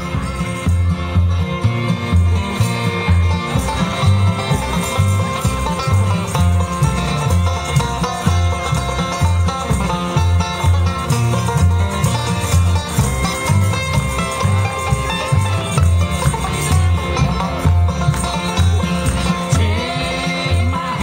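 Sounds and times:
bluegrass band playing: 0:00.0 - 0:21.0
upright bass beat: 0:00.0 - 0:21.0.

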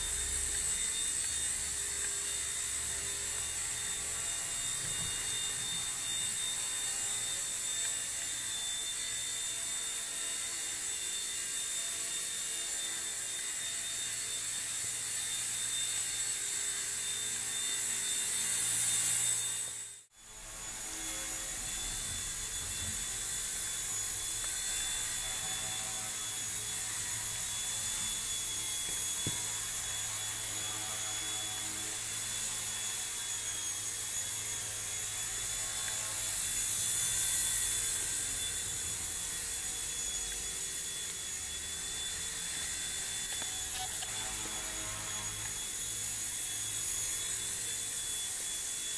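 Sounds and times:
rc helicopter motor whine: 0:00.0 - 0:48.9.

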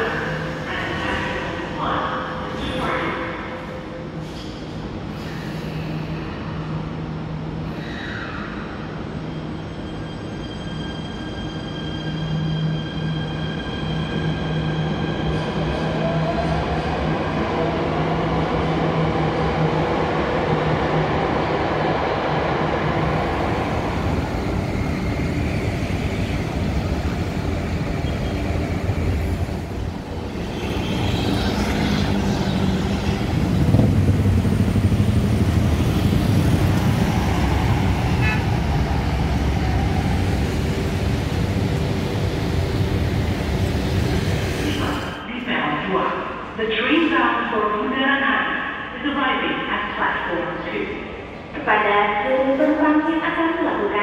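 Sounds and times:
cars and motorbikes passing: 0:30.4 - 0:38.8.

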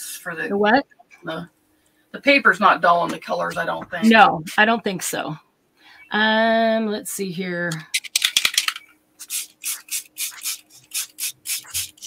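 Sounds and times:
spray bottle hissing mist: 0:08.5 - 0:12.0.

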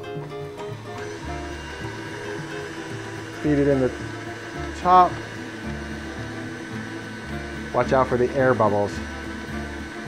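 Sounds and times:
stand mixer motor humming: 0:00.5 - 0:10.0.

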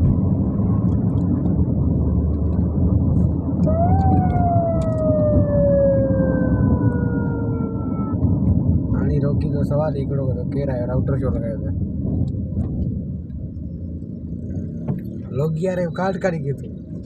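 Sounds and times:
vehicle driving on road: 0:00.0 - 0:17.0
siren-like tone falling in pitch: 0:03.6 - 0:08.2.

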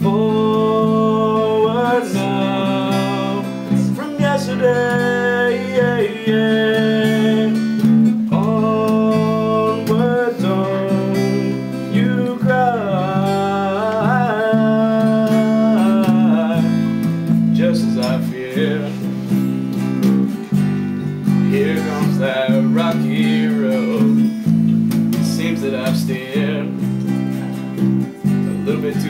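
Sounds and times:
acoustic guitar strumming: 0:00.0 - 0:29.0
sliding melody line: 0:00.2 - 0:26.6.

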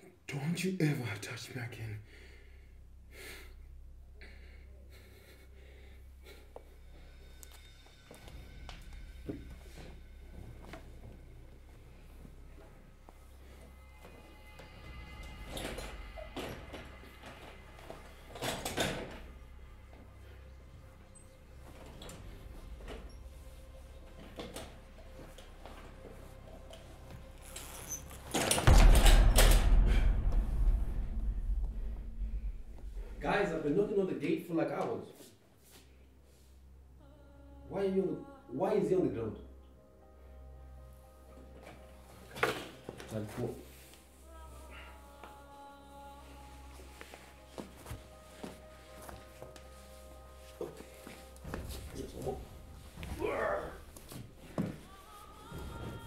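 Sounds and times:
steady low hum: 0:28.6 - 0:34.0.

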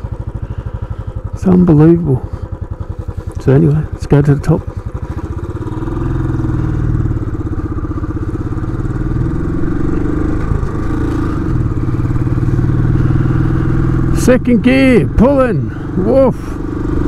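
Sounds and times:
motorcycle engine accelerating: 0:00.0 - 0:17.0.

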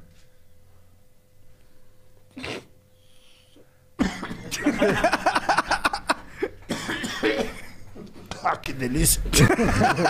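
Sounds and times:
man coughing: 0:04.0 - 0:05.6, 0:06.2 - 0:08.6.

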